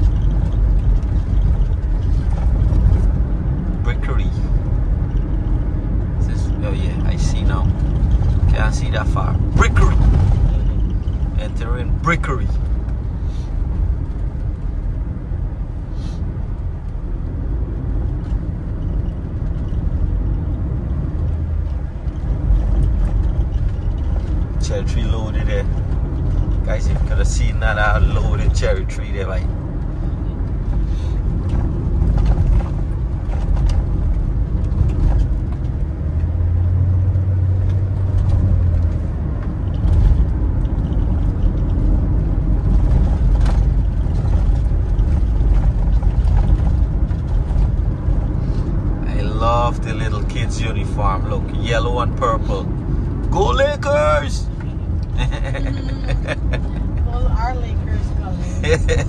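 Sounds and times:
deep low hum: 0.0s - 53.4s, 54.4s - 59.0s
car cabin road and engine rumble: 0.0s - 59.0s.

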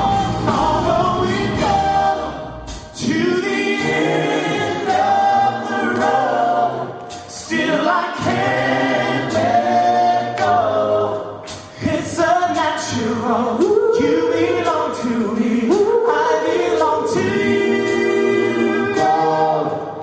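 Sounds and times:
backing band playing: 0.0s - 20.0s
two men singing together: 0.0s - 20.0s.

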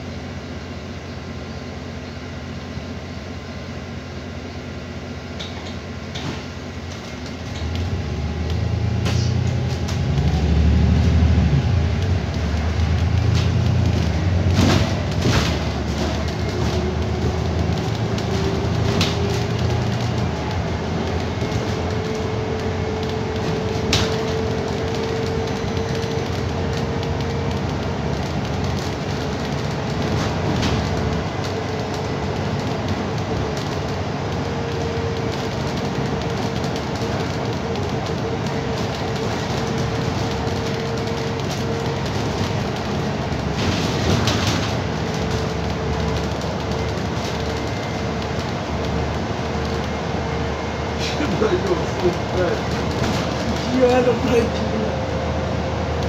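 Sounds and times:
bus drivetrain rumble: 0.0s - 56.0s
bus whine: 0.0s - 56.0s
body rattles and knocks: 12.0s - 50.0s, 51.3s - 54.6s.

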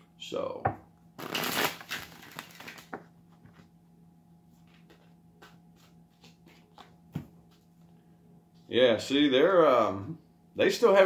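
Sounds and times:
cards riffle shuffled: 1.2s - 3.0s.

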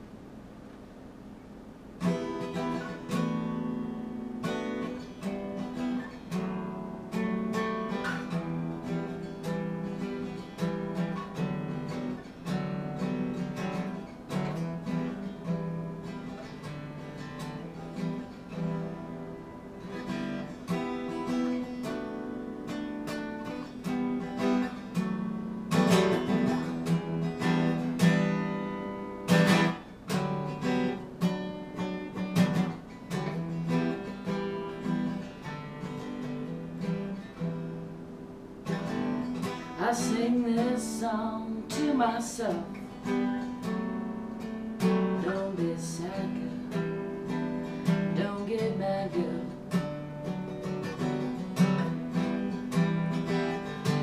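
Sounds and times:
acoustic guitar picked and strummed: 0.0s - 54.0s.

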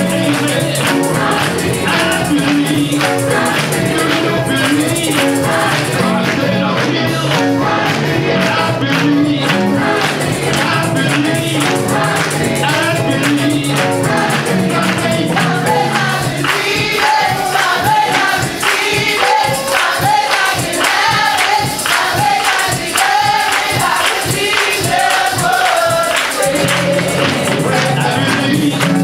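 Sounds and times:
bass accompaniment: 0.0s - 29.0s
choir and congregation singing: 0.0s - 29.0s
hand-clapping on the beat: 0.0s - 29.0s.

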